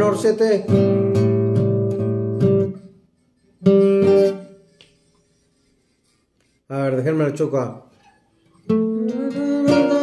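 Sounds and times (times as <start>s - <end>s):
acoustic guitar strumming chords: 0.0s - 2.9s, 3.6s - 4.6s, 8.6s - 10.0s.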